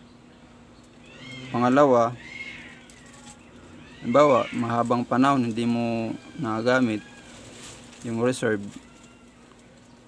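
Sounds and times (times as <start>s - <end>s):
faint animal call: 1.0s - 9.9s.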